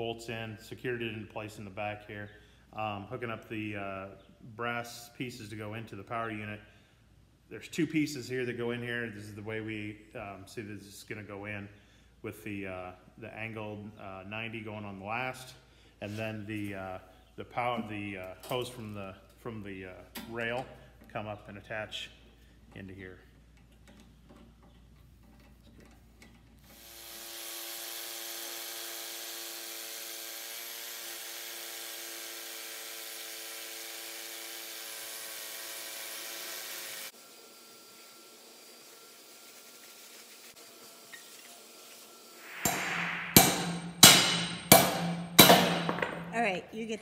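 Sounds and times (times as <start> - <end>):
hammer drill boring into concrete: 26.7 - 37.1
hammer blows on metal: 42.5 - 46.4.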